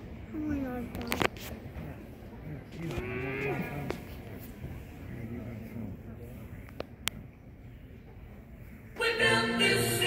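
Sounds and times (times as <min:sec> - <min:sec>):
low crowd murmur: 0:00.0 - 0:10.0.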